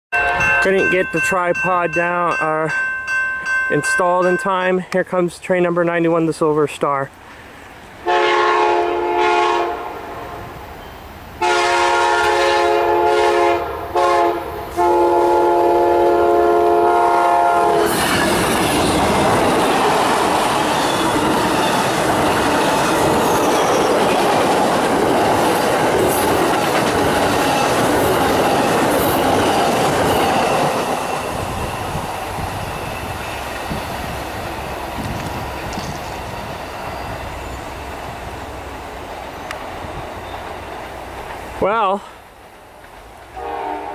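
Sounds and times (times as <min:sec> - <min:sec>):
train horn signal: 0:00.2 - 0:00.9, 0:08.0 - 0:10.4, 0:11.4 - 0:18.0, 0:43.4 - 0:43.9
train wheels on rails: 0:14.5 - 0:43.9.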